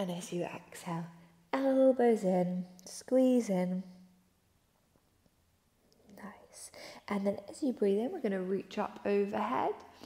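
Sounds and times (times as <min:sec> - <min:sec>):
woman breathing: 0:06.7 - 0:07.1.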